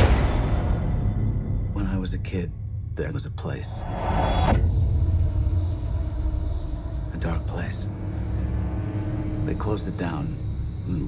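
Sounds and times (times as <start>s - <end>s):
deep low rumble drone: 0.0s - 11.0s
film trailer score: 0.0s - 11.0s.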